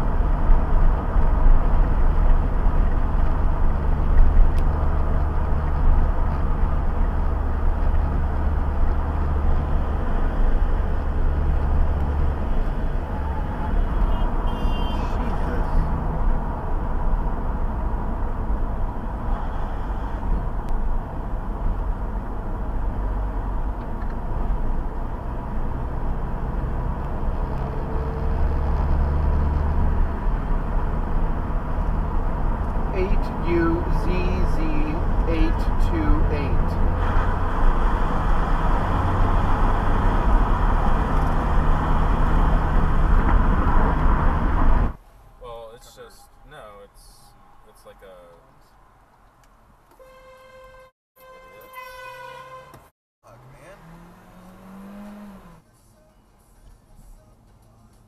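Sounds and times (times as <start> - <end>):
car engine rumble: 0.0 - 50.0, 53.2 - 58.0.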